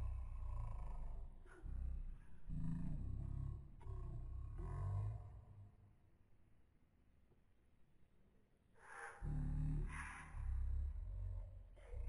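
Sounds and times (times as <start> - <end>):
deep pitched growling voice: 0.0 - 5.7, 9.0 - 12.0.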